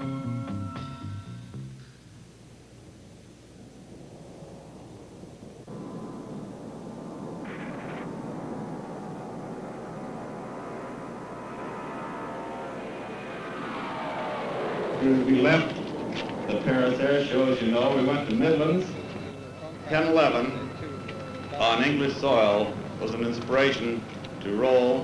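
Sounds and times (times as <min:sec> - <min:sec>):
turbofan whine: 0:00.0 - 0:25.0
jet airliner engines rushing: 0:02.5 - 0:25.0.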